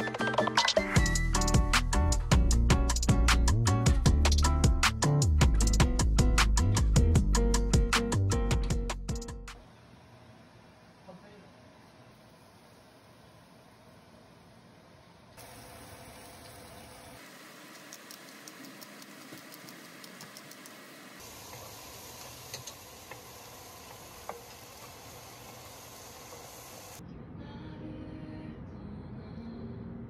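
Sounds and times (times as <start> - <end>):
vegetables sizzling in a frying pan: 15.4 - 27.0.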